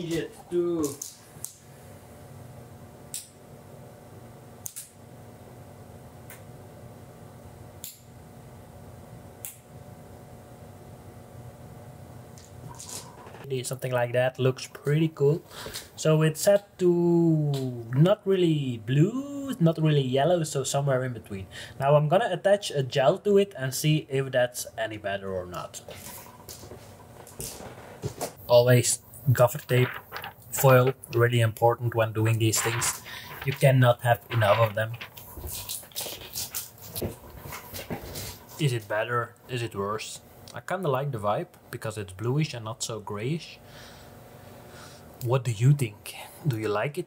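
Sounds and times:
steady low hum: 0:00.0 - 0:47.0
steady room hiss: 0:00.0 - 0:47.0.

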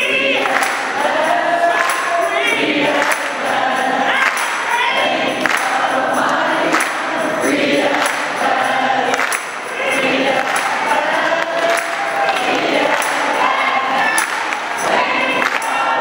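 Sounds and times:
choir singing: 0:00.0 - 0:16.0
hand claps: 0:00.4 - 0:16.0.

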